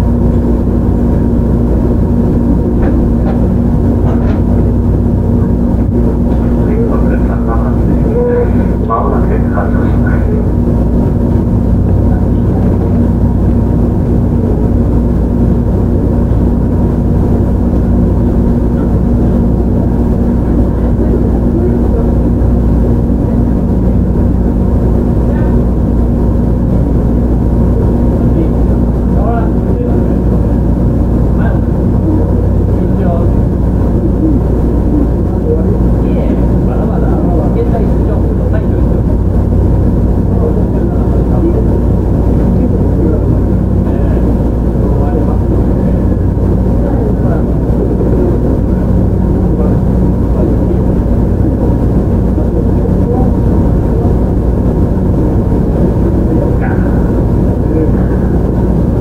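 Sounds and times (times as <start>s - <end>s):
steady low hum: 0.0s - 59.0s
train wheels rumbling on rail: 1.8s - 10.6s.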